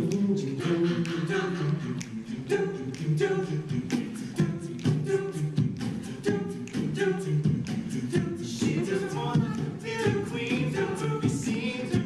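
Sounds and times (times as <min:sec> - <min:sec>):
male group singing in harmony: 0:00.0 - 0:12.0.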